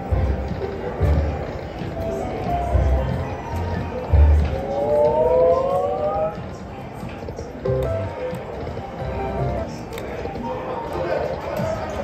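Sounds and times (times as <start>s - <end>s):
background noise: 0.0s - 12.0s.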